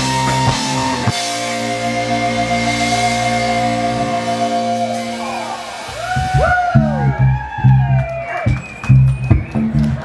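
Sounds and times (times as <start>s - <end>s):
sliding bending guitar notes: 0.0s - 7.8s
live rock band playing: 0.0s - 10.0s.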